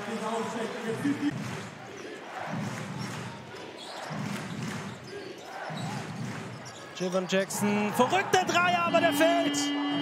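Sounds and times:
crowd voices: 0.7 - 10.0.

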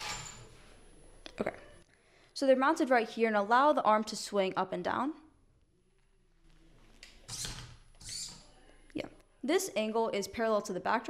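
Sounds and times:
servo whirring: 7.2 - 8.5.

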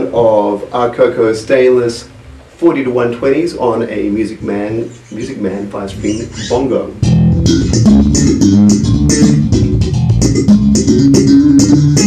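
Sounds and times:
electric bass played fingerstyle: 5.9 - 12.0.

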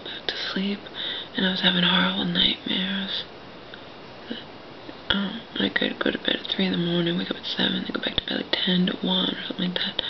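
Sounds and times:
woman whispering softly: 5.1 - 10.0.

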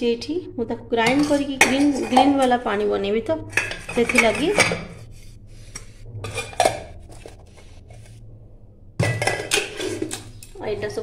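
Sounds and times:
metal bowl clinking: 1.0 - 5.1, 5.7 - 7.4, 9.0 - 10.9.

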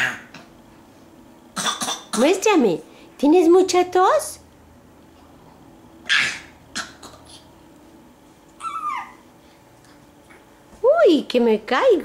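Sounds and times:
baby coughing: 0.0 - 0.3, 1.6 - 2.4, 6.0 - 7.5.

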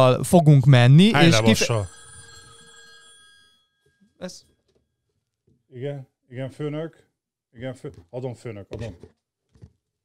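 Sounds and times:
telephone bell ringing: 1.2 - 4.2.

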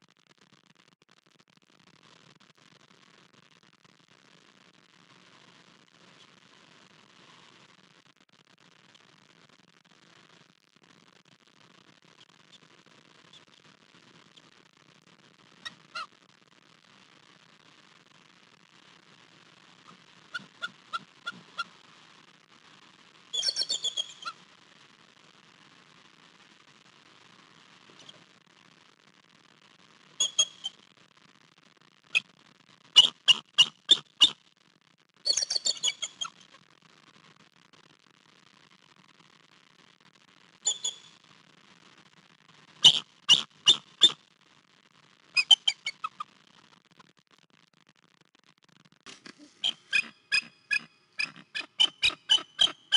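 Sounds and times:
eagle rapid chattering: 23.4 - 24.3, 35.3 - 36.4, 42.8 - 44.2, 49.4 - 52.9
eagle calling high notes: 49.4 - 52.9.

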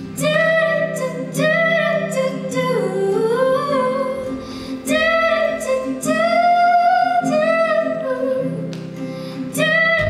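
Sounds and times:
soft musical backing: 0.0 - 10.0
woman singing slow song: 0.2 - 10.0.

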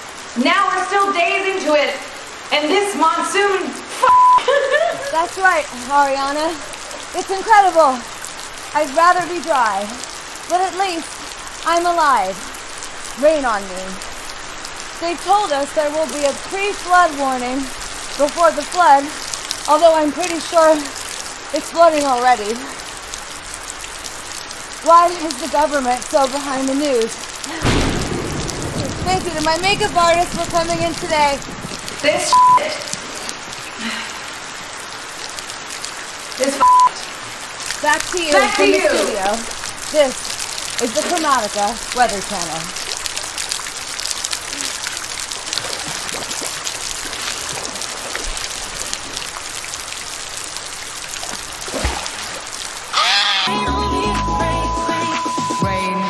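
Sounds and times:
water spray falling: 3.4 - 33.5, 35.8 - 53.5
person speaking: 8.7 - 12.4, 32.0 - 33.0, 36.4 - 37.1, 37.8 - 42.7
person swimming: 44.4 - 49.5, 51.2 - 53.0.

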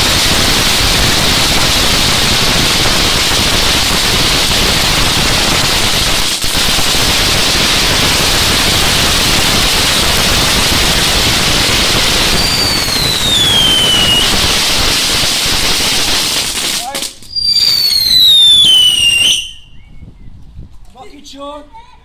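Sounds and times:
firework fountain hissing: 0.0 - 19.8
falling whistle: 12.3 - 14.4, 17.3 - 20.3.

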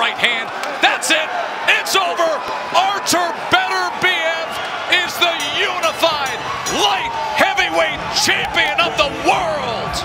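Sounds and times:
people shouting and whooping: 0.0 - 10.0.

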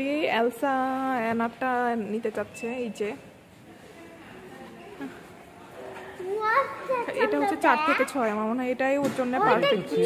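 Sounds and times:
child's voice: 6.2 - 8.1.

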